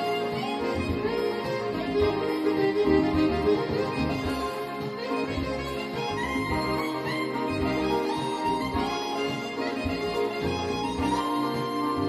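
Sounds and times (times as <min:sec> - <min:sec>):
held synth melody line: 0:00.0 - 0:12.0
pulsing bass: 0:00.7 - 0:04.5, 0:05.3 - 0:09.0.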